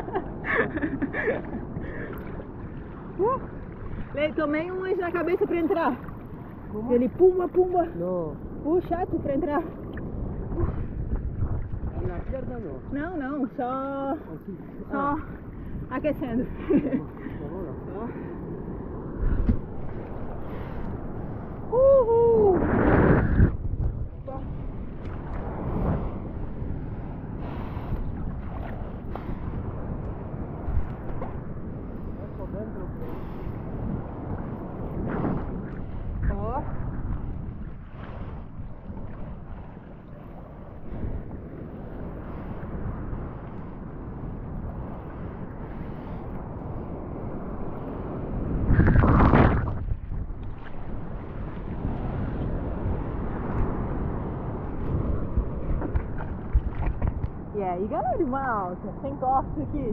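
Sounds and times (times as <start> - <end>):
sea water sloshing and splashing: 0.0 - 57.6
wind on microphone: 0.0 - 59.9.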